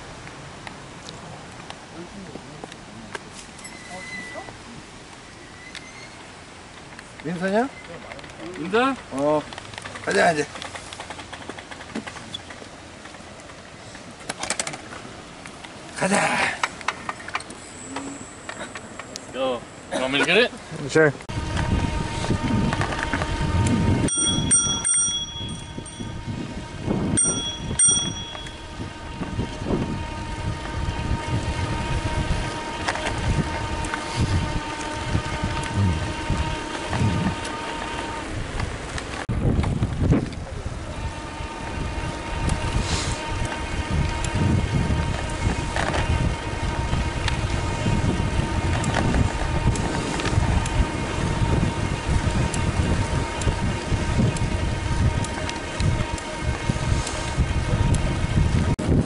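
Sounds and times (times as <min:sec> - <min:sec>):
bicycle riding on pavement: 0:00.0 - 0:59.0
steady high whine: 0:12.6 - 0:59.0
wind rumbling on microphone: 0:21.3 - 0:59.0
bicycle bell ringing: 0:24.0 - 0:26.4, 0:27.1 - 0:29.0.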